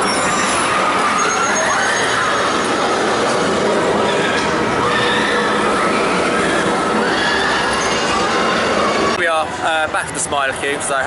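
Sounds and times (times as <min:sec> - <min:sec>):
roller coaster wheel rush: 0:00.0 - 0:10.3.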